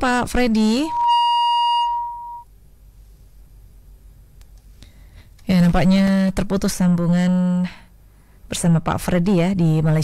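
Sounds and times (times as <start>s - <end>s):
steady telephone beep: 0.8s - 2.5s.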